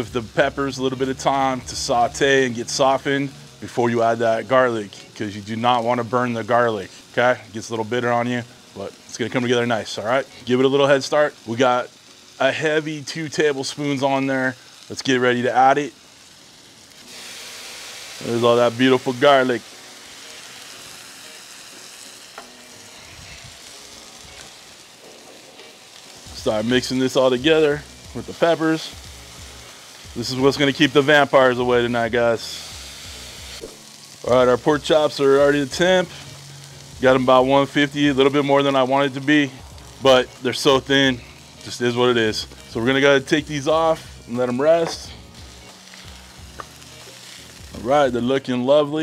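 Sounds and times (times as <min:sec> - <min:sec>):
vegetables sizzling on a griddle: 0:00.0 - 0:49.0.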